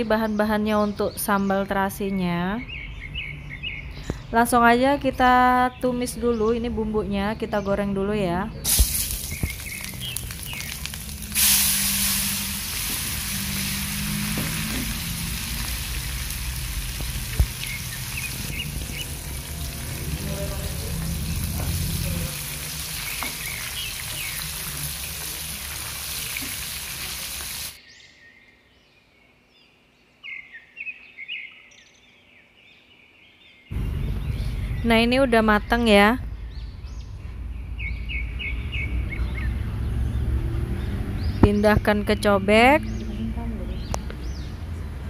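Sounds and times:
vegetables sizzling in hot oil: 0:08.7 - 0:27.8.

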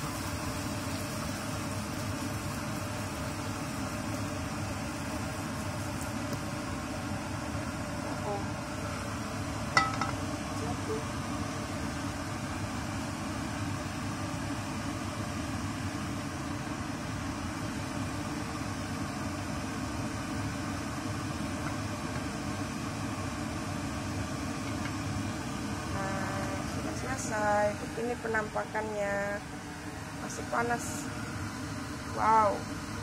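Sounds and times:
metal wok clanking: 0:09.7 - 0:10.2.

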